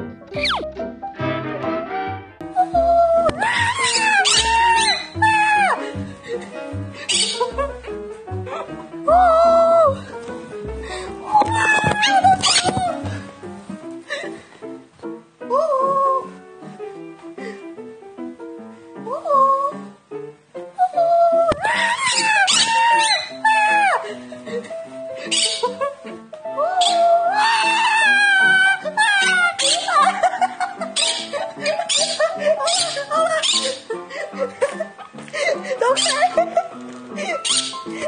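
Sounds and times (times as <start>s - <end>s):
background music: 0.0s - 38.0s
woman crying out: 2.6s - 5.9s, 11.2s - 13.0s, 26.6s - 30.0s
parakeet screechy calls: 3.6s - 5.4s, 7.1s - 7.5s, 21.8s - 23.4s, 25.3s - 25.8s, 26.8s - 27.8s, 29.6s - 29.9s, 31.0s - 33.9s, 36.0s - 36.3s, 37.4s - 37.9s.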